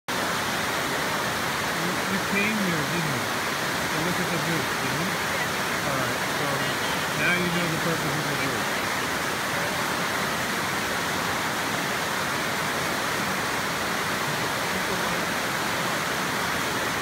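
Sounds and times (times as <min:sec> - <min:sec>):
faint voices talking: 0:01.8 - 0:10.1.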